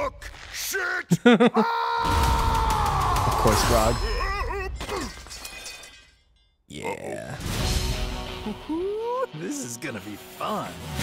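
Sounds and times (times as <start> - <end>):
crashing and shattering: 2.0 - 6.5.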